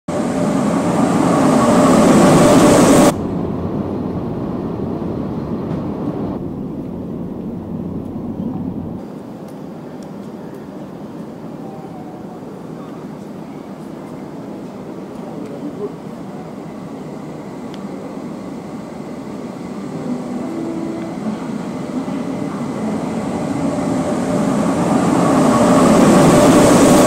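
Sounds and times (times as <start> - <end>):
loud train rushing noise: 0.1 - 27.0
train rumble: 0.1 - 27.0
passenger car running hum: 2.5 - 9.1, 19.4 - 27.0.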